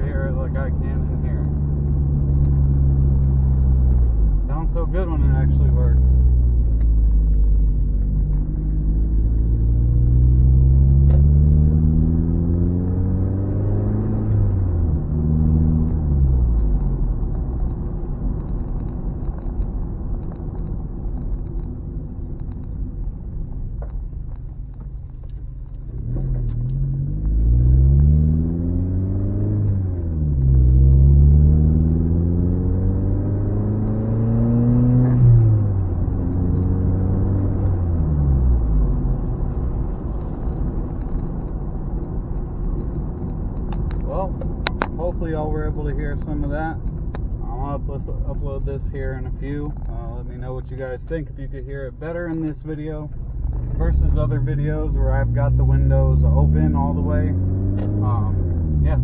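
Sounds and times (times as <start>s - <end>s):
car engine accelerating: 0.0s - 59.0s.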